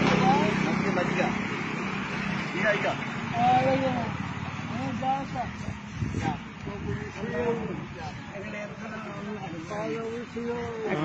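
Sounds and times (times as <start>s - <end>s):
people talking: 0.0s - 1.4s, 2.6s - 11.0s
road traffic hum: 0.0s - 11.0s.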